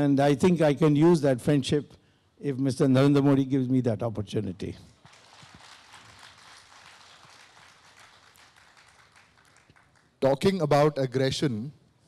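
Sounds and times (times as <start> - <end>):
faint audience applause: 5.0 - 10.2.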